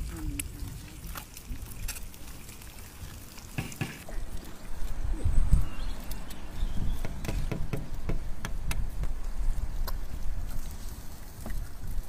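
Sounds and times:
eggs sizzling on a griddle: 0:00.0 - 0:04.0
sharp pops of frying: 0:03.5 - 0:04.0.

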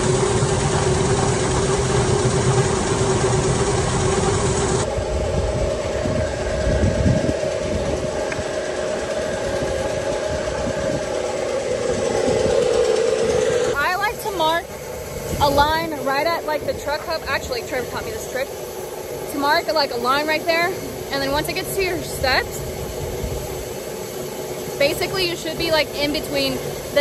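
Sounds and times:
grain auger humming: 0:00.0 - 0:27.0.

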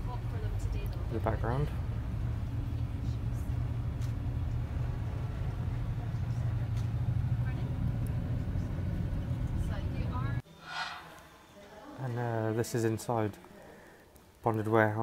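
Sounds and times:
coach engine and road rumble: 0:00.0 - 0:10.4.

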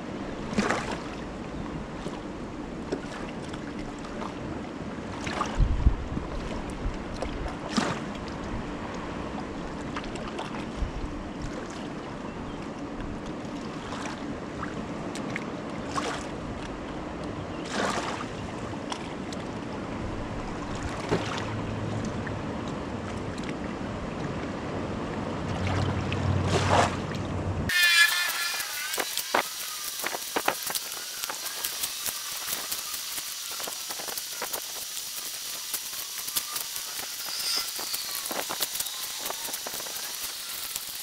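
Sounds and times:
sea water lapping and splashing: 0:00.0 - 0:27.5, 0:28.6 - 0:41.0
small sharp splashes and clicks: 0:06.3 - 0:09.0, 0:12.6 - 0:19.7, 0:20.6 - 0:23.6, 0:28.9 - 0:41.0.

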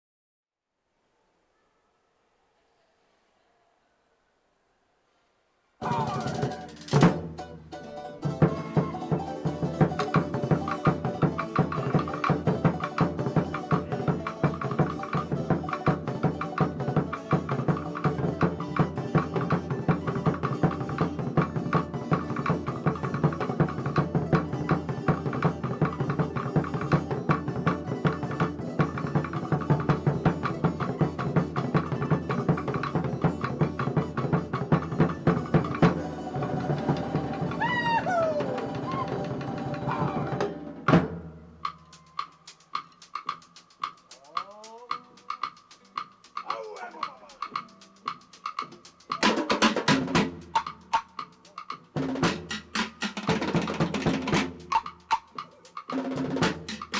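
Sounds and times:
fast drum music: 0:05.8 - 0:07.6, 0:08.2 - 0:56.9.

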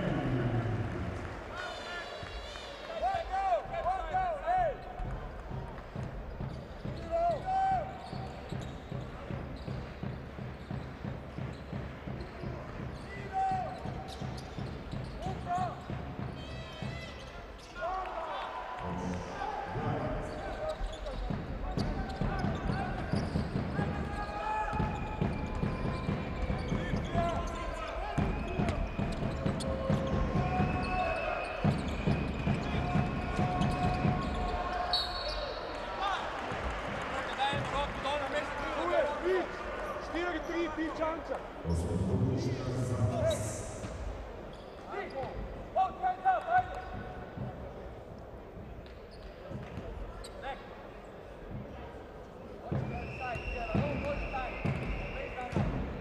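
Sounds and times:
crowd voices and chanting: 0:00.0 - 0:56.0
sneaker squeaks on court: 0:08.0 - 0:12.4, 0:13.8 - 0:15.3, 0:20.3 - 0:23.6.

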